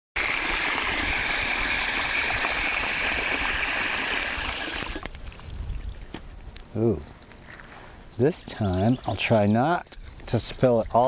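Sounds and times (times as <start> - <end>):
hose water spraying into rubber bowl: 0.2 - 5.1, 9.2 - 11.0.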